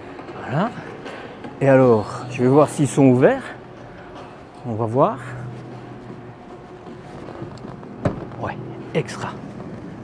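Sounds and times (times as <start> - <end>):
low hall hum: 0.0 - 10.0.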